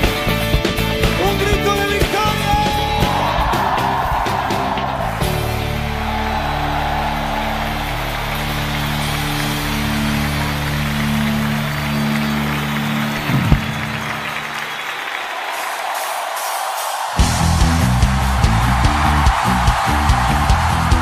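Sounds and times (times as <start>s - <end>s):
crowd cheering and applause: 0.0s - 21.0s
band holding low chord: 5.4s - 14.7s
final band hit: 13.0s - 16.0s.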